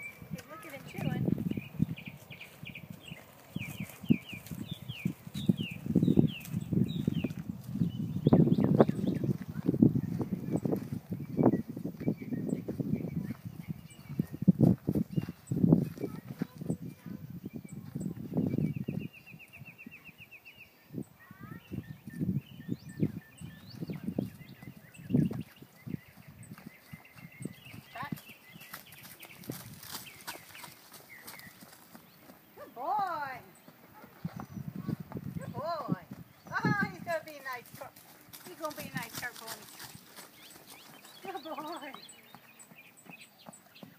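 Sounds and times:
horse hooves on dirt: 0:00.0 - 0:19.3, 0:22.6 - 0:43.9.

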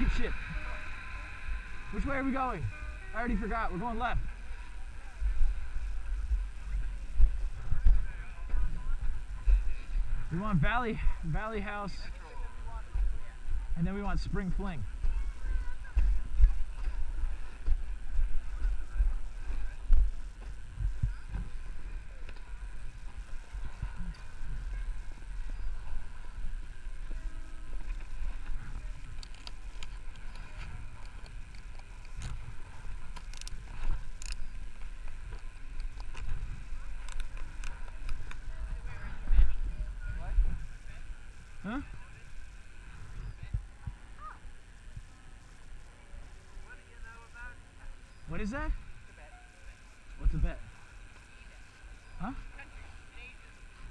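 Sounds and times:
wind buffeting microphone: 0:14.6 - 0:45.4.

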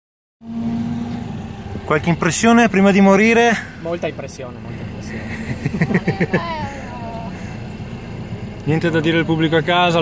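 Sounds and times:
car engine idling: 0:00.4 - 0:10.0.

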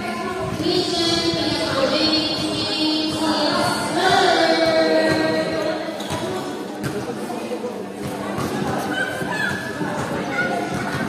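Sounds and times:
background chatter: 0:00.0 - 0:11.0
basketball bouncing on court floor: 0:00.4 - 0:07.2, 0:08.0 - 0:11.0.

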